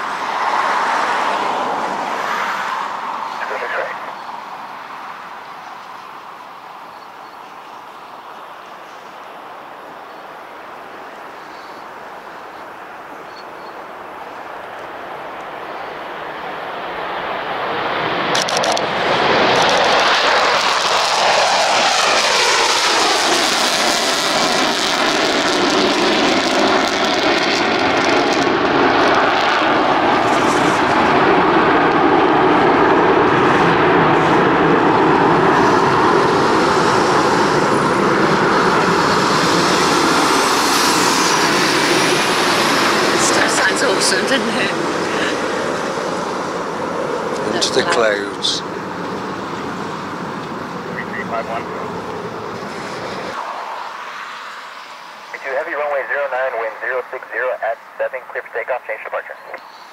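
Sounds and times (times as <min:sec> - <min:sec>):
jet whine gliding down: 0:00.0 - 0:59.6
jet engines roaring: 0:00.0 - 0:59.9.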